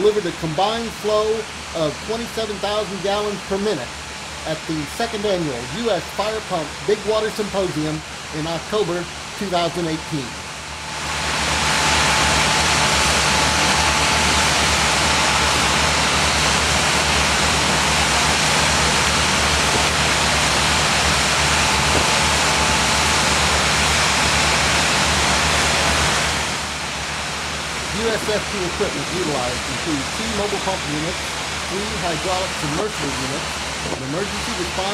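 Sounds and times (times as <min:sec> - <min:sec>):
low steady hum: 0:00.0 - 0:34.9
rushing hiss of water streams: 0:00.0 - 0:34.9.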